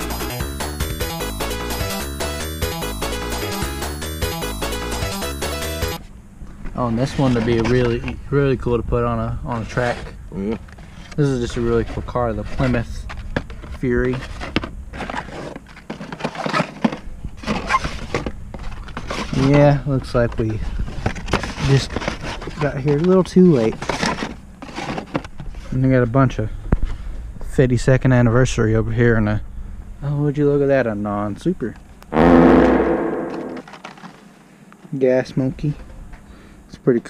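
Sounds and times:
sudden hit with booming tone: 32.2 - 33.6.

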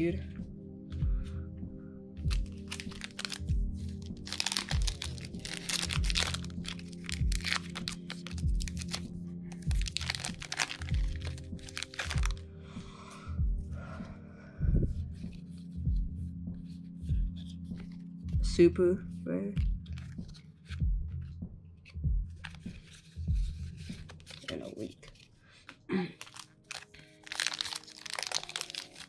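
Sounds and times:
background music with steady beat: 0.0 - 29.0
foil wrapper crinkling and tearing: 2.3 - 12.4, 23.8 - 29.0.

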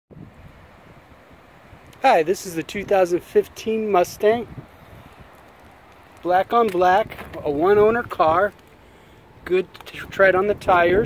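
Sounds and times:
faint outdoor hiss: 0.1 - 11.0
wind buffeting microphone: 0.1 - 11.0.

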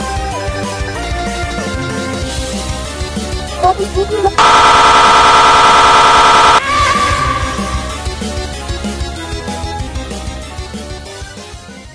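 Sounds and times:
ringing tone: 4.4 - 6.6
harsh buzzing sound effect: 4.4 - 6.7.

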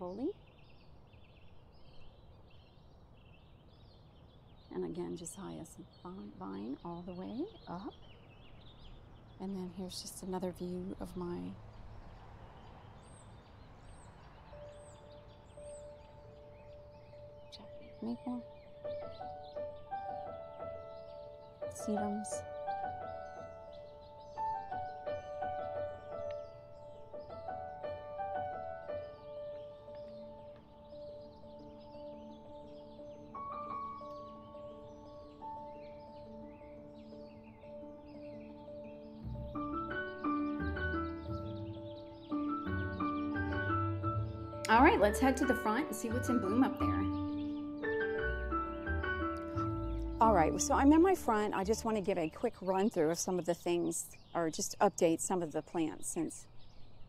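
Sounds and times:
bird chirping: 0.0 - 57.0
outdoor background noise: 0.0 - 57.0
soft background music: 4.7 - 8.2, 9.3 - 12.4, 13.9 - 56.2.

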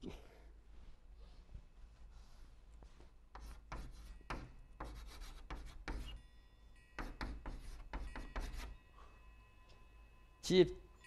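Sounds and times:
chalk scraping on blackboard: 3.3 - 6.2, 7.0 - 8.8.

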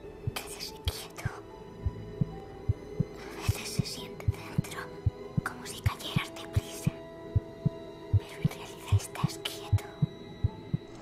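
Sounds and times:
whispering voices: 0.4 - 1.4, 3.2 - 7.0, 8.2 - 10.0
heartbeat-like double thump: 1.9 - 3.1.

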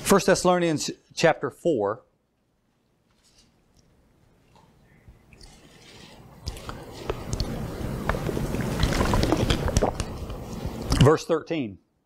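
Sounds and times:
man gulping: 7.2 - 11.0
plastic bottle crackling and clicking: 8.1 - 10.4.

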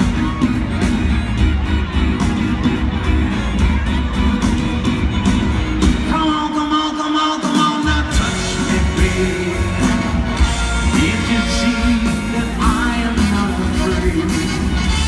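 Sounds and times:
live rock band: 0.0 - 15.0.

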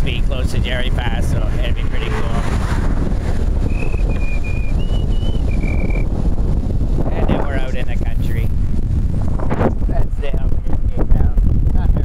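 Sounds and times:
wind buffeting microphone: 0.0 - 12.0
person whistling high notes: 3.7 - 6.0.

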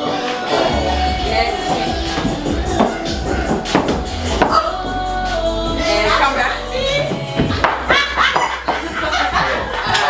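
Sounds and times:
people laughing: 7.5 - 10.0.

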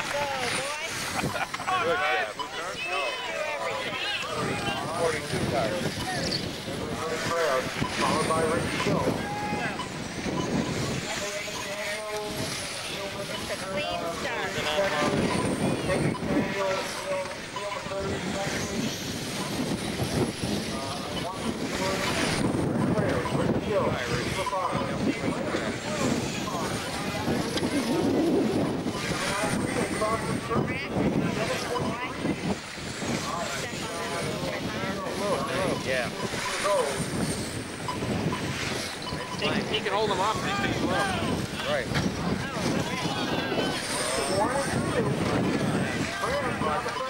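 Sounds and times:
crowd chatter: 0.0 - 47.0.

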